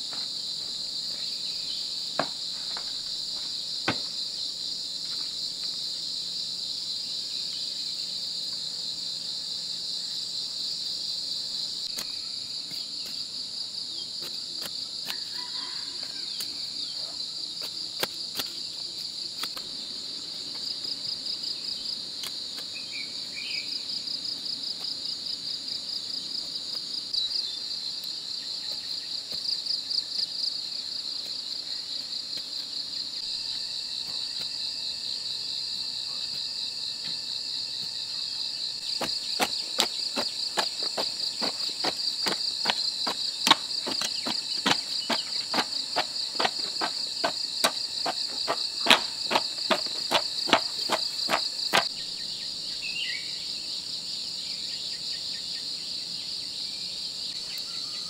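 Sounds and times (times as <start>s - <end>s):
insects chorus: 0.0s - 58.0s
hoe chopping into soil: 38.9s - 51.9s.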